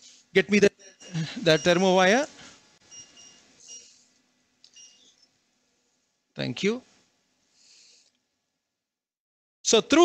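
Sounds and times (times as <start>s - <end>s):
faint electronic beep: 2.9s - 4.0s, 4.7s - 5.3s.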